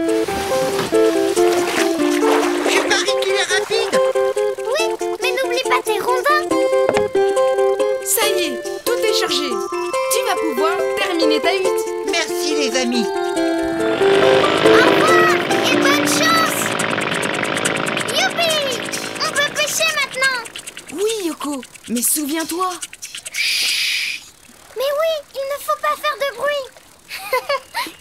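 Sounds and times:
music: 0.0 - 20.6
cartoon hovercraft motor: 0.0 - 28.0.

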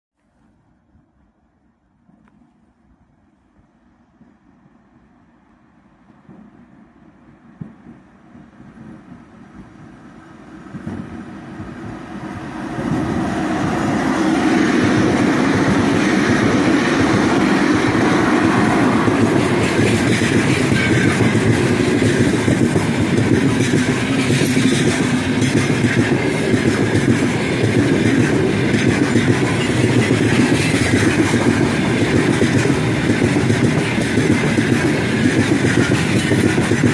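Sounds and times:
train wheels on rails: 3.5 - 36.9
electric locomotive passing: 4.5 - 36.9.

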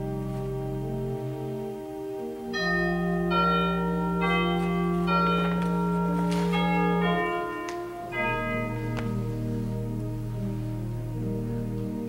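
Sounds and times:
slow instrumental church music: 0.0 - 12.0.

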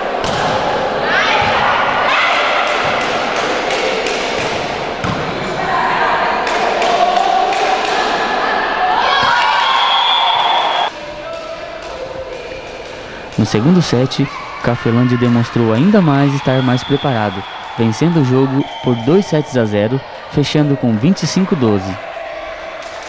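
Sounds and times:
people shouting and cheering: 0.0 - 23.0
ball thuds: 4.4 - 5.3.

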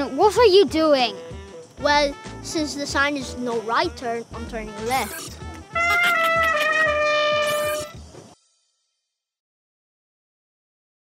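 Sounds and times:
trumpet wah-wah note: 4.8 - 8.0.

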